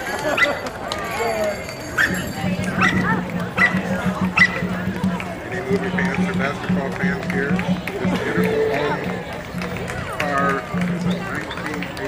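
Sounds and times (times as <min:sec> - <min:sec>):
people talking: 0:00.0 - 0:12.0
music: 0:02.1 - 0:12.0
dog barking: 0:02.8 - 0:04.7.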